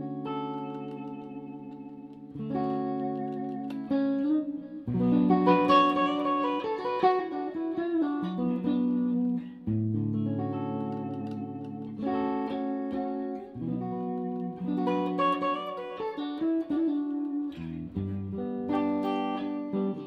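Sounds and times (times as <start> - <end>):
clean electric guitar chords: 0.0 - 20.0.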